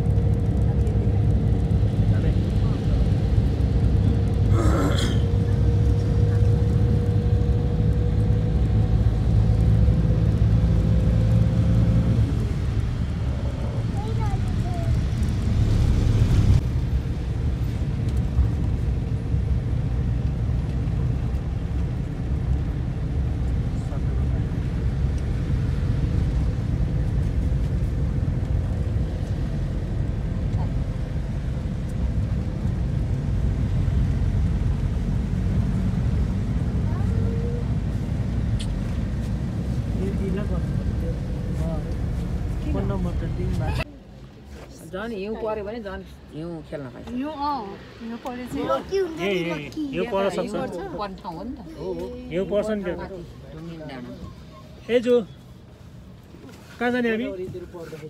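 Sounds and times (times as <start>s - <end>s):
engine and road rumble: 0.0s - 58.0s.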